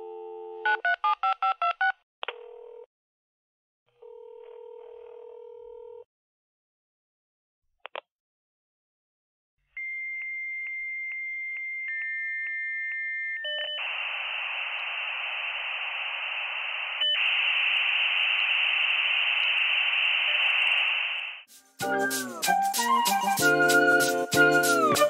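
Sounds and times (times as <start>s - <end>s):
modem data hiss: 13.8s - 21.5s.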